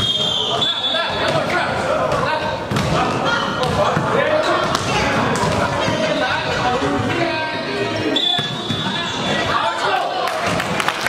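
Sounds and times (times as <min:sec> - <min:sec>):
volleyball hits echoing: 0:01.2 - 0:06.1.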